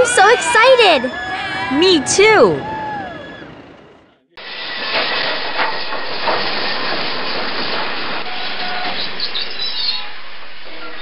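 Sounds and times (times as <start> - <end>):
passenger train rushing past: 0.0 - 11.0.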